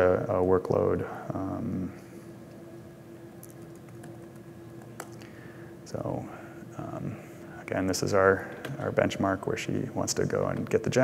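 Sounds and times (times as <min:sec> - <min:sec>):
steady low hum: 0:00.0 - 0:11.0
laptop keyboard typing: 0:03.4 - 0:05.2.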